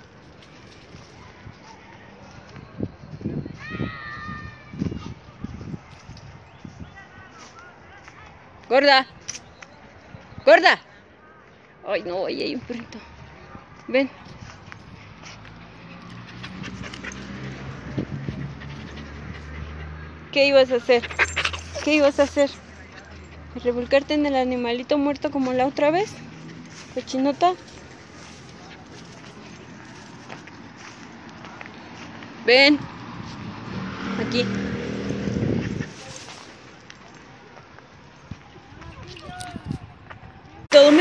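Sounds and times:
vehicle engine passing by: 14.4 - 37.4
dog panting: 14.5 - 24.3, 25.4 - 31.1, 35.4 - 36.8.

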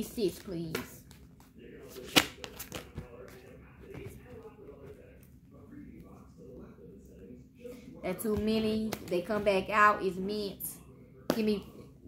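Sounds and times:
cards being shuffled: 1.0 - 3.4
card snap: 2.0 - 2.9.

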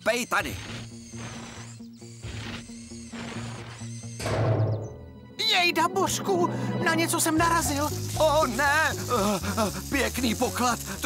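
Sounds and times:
cartoon digger scraping soil: 0.0 - 4.1
background music: 0.4 - 11.0.

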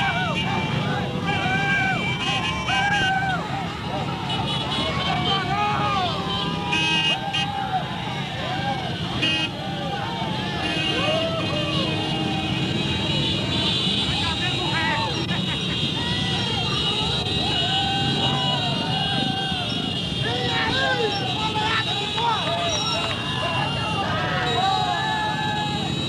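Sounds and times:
crowd shouting: 0.0 - 26.0
motorcycles rumbling at low speed: 0.0 - 26.0.

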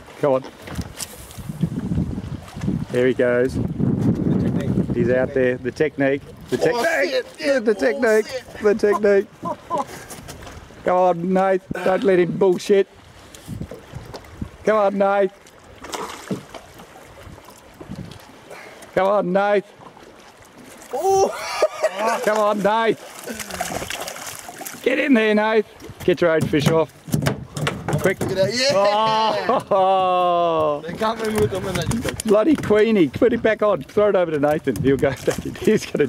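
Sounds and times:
wind buffeting microphone: 0.6 - 7.0, 11.6 - 14.7, 16.3 - 18.5, 25.7 - 36.0.

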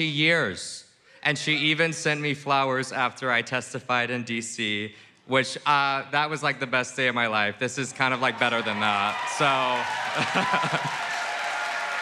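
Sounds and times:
audience cheering: 7.9 - 12.0
audience applauding: 8.1 - 12.0.

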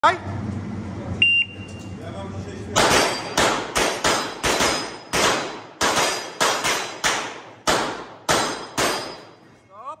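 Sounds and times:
shot timer beep: 1.2 - 1.8
pistol shots: 2.8 - 9.4
steel targets ringing: 2.8 - 9.5.

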